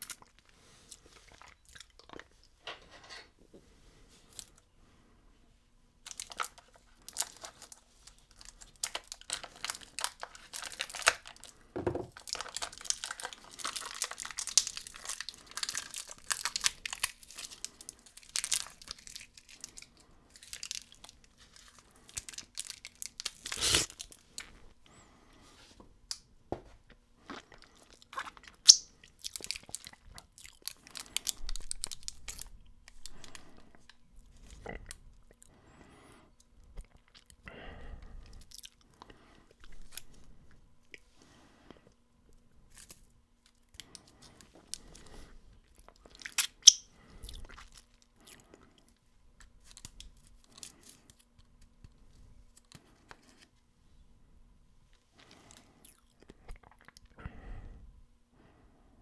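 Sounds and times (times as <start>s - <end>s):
plastic wrapping crinkling: 6.0s - 24.6s, 27.8s - 34.0s.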